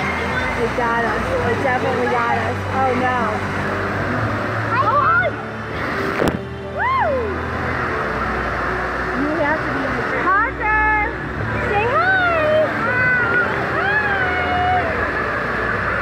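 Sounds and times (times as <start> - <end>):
rushing water: 0.0 - 16.0.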